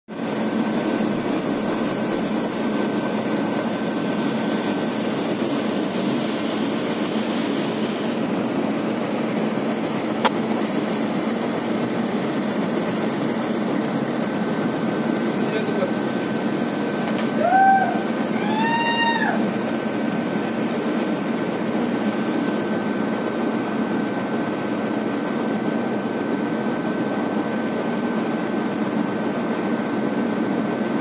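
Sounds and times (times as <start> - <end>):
marine engines droning: 0.2 - 31.0.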